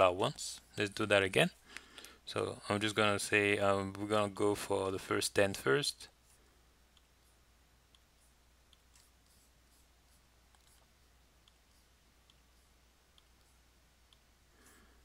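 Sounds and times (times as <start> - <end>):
computer mouse clicks: 13.1 - 14.3.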